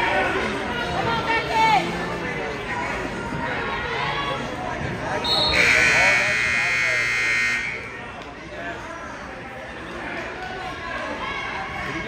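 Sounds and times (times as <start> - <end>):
background chatter: 0.0 - 12.0
scoreboard buzzer blast: 5.6 - 7.9.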